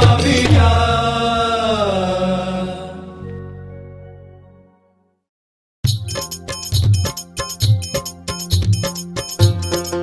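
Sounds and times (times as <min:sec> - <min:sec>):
drum beats: 0:00.0 - 0:00.9, 0:05.8 - 0:10.0.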